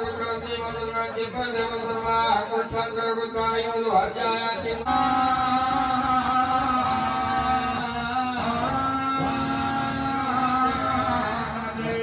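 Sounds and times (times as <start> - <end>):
man chanting into a microphone: 0.0 - 12.0.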